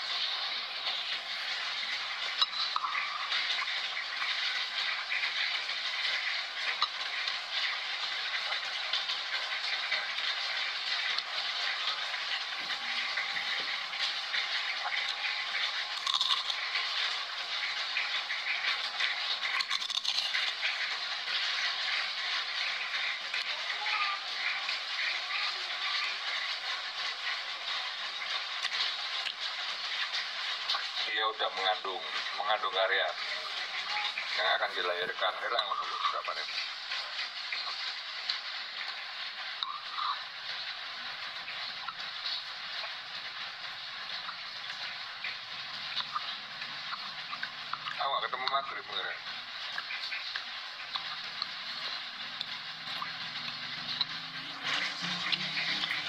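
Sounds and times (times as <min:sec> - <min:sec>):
steady rain falling: 0:00.0 - 0:56.0.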